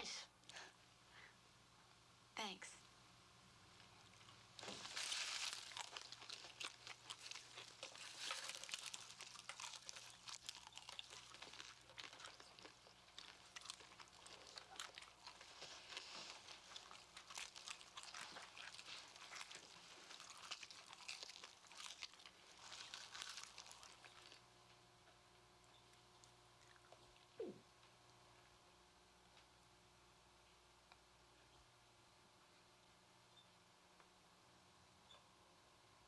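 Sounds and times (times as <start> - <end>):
popcorn being chewed: 3.8 - 27.9.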